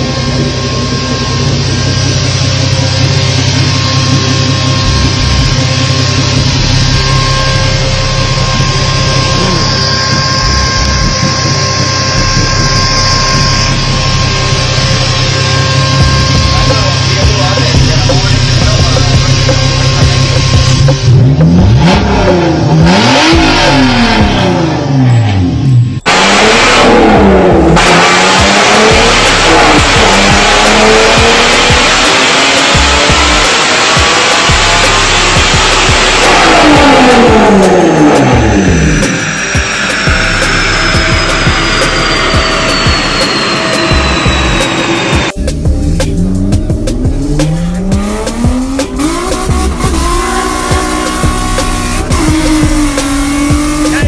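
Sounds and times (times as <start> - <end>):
engine revving: 0.0 - 54.0.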